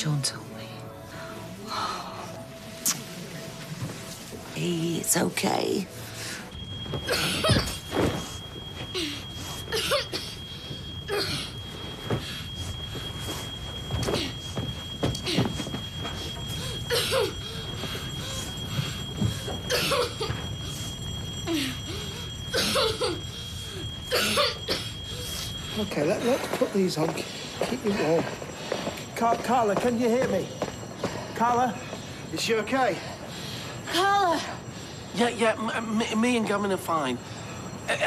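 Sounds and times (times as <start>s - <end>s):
smoke alarm tone: 0.0s - 38.0s
person coughing: 16.9s - 17.3s, 19.7s - 20.4s, 22.5s - 23.2s, 24.1s - 24.9s.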